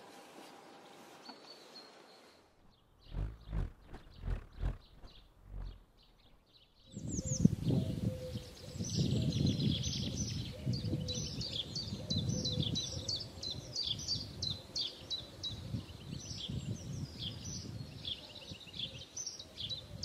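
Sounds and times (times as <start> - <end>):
small birds chirping: 1.2 - 19.9
soft low thumps: 3.0 - 6.4
low rumbling noise: 3.0 - 6.6.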